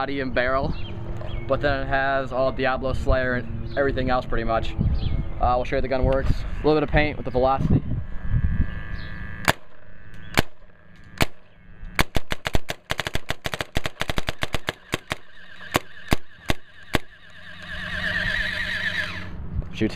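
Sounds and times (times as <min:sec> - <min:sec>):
wavering electric whirr: 0:00.0 - 0:12.6, 0:13.5 - 0:19.9
paintball marker firing: 0:09.4 - 0:17.2.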